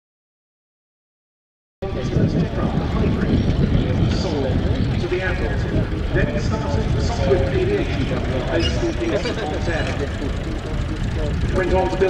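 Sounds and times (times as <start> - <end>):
commentator speaking: 1.8 - 12.0
rotary aircraft engine drone: 1.8 - 12.0.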